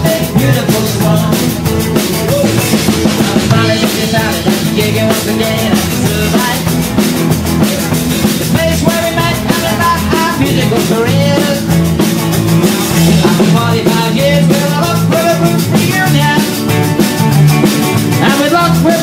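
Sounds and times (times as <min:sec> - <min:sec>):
drum kit with cymbals: 0:00.0 - 0:19.0
electric guitar: 0:00.0 - 0:19.0.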